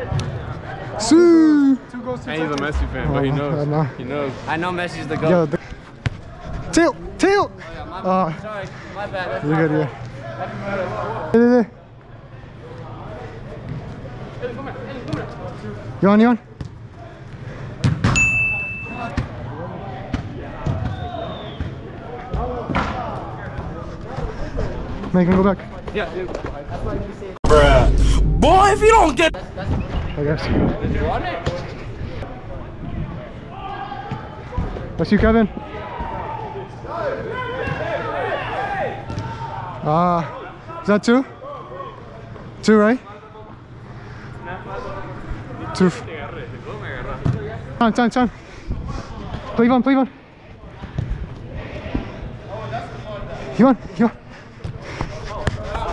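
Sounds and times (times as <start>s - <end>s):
men calling out: 27.4s - 29.4s
steady low hum: 27.4s - 29.4s
man shouting: 27.5s - 29.4s.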